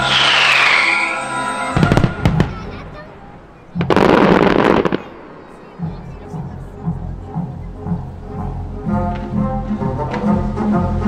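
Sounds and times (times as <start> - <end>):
falling firework whistle: 0.0 - 2.4
firework bangs: 0.0 - 5.8
orchestral music: 0.0 - 11.0.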